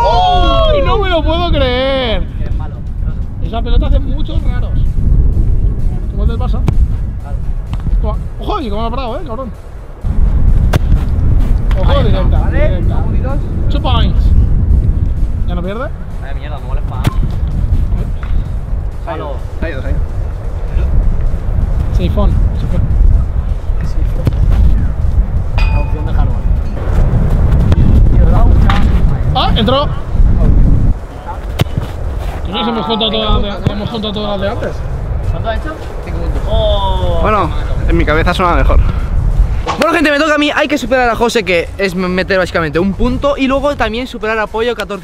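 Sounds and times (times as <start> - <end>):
players shouting: 0.0 - 1.2
wind buffeting microphone: 0.0 - 45.0
footballs being kicked: 24.1 - 24.8, 31.4 - 32.0.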